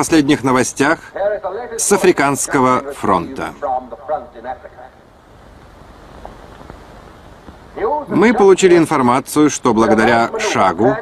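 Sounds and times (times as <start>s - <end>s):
film soundtrack hiss and rumble: 0.0s - 11.0s
faint ticks: 5.6s - 7.6s.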